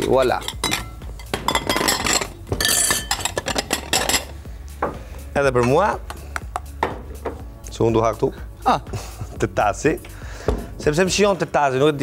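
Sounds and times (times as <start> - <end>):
metal spoon clinking on glass bowl: 0.0 - 4.3.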